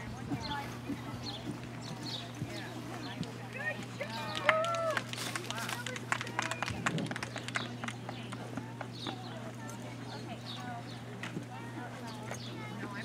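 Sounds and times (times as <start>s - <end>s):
horse hoofbeats on dirt: 0.0s - 13.0s.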